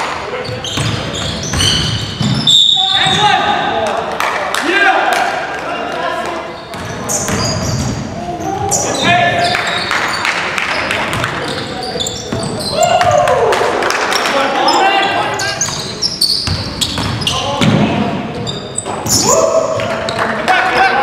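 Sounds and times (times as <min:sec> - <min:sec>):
sneakers squeaking: 0:00.0 - 0:03.8, 0:06.2 - 0:13.3, 0:14.1 - 0:20.4
basketball bouncing on hardwood: 0:06.7 - 0:08.0, 0:16.4 - 0:17.8.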